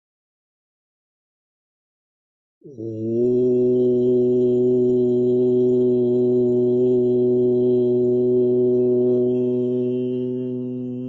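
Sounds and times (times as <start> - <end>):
man chanting: 2.7 - 11.0.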